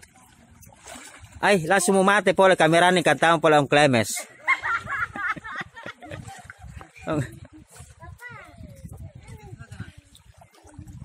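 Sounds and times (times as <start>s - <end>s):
water splashing and sloshing: 0.0s - 11.0s.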